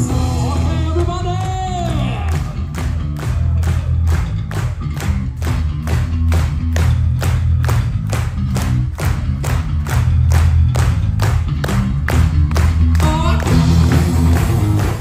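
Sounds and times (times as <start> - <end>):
drums keeping a steady beat: 0.0 - 15.0
live rock band playing: 0.0 - 15.0.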